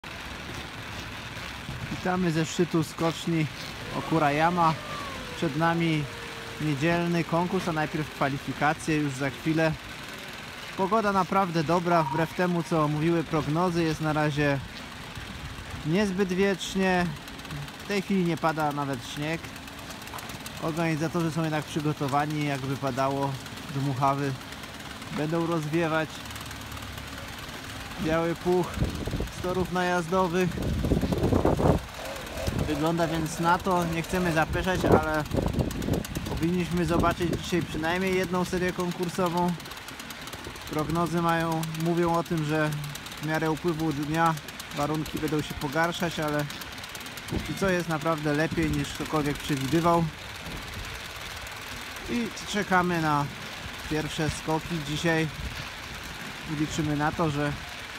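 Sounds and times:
low mechanical drone: 0.0 - 57.9.

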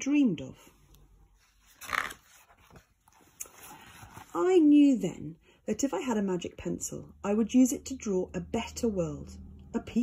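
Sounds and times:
faint paper rustling: 0.6 - 4.9
paper page turning: 1.4 - 4.4.

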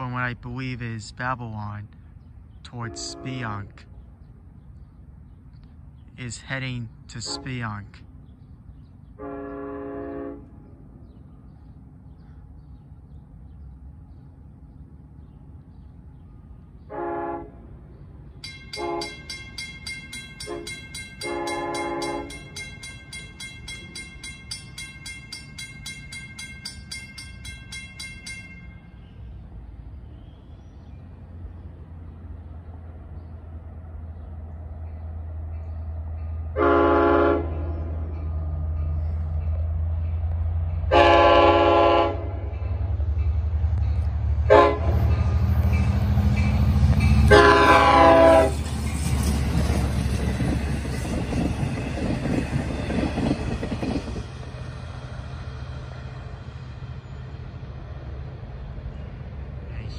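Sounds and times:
locomotive rumble: 0.0 - 59.9
train horn blasts: 2.8 - 3.7, 7.2 - 7.8, 9.2 - 10.6, 16.9 - 17.7, 18.7 - 19.3, 20.4 - 22.6, 36.5 - 38.1, 40.9 - 42.5, 44.5 - 48.6.

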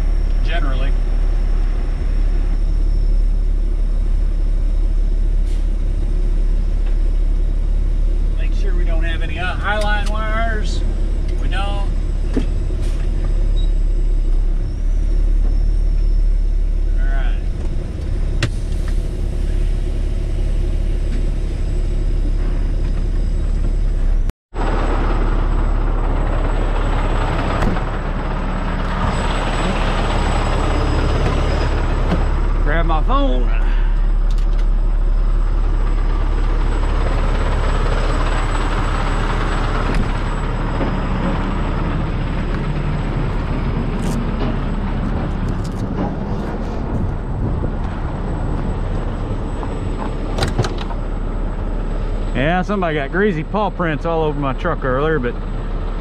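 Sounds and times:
diesel engine drone: 0.0 - 56.0
wavering tone: 24.7 - 33.3.

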